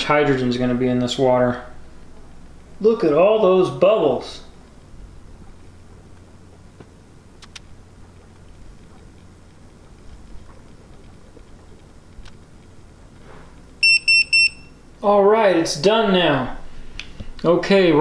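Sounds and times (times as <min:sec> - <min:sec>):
faint low hum: 0:00.0 - 0:18.0
short high electronic beeps: 0:13.8 - 0:14.8.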